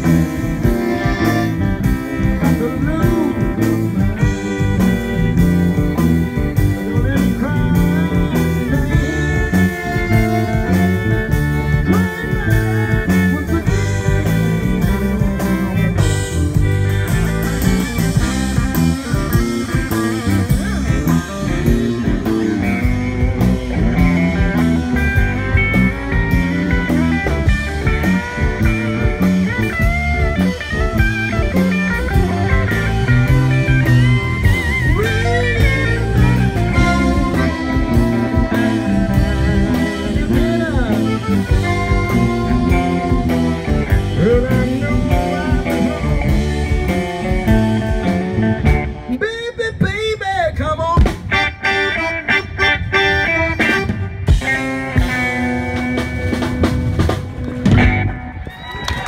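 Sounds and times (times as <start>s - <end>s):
button accordion: 0.0s - 49.2s, 51.3s - 55.3s
drums: 0.0s - 59.0s
electric guitar: 0.0s - 59.0s.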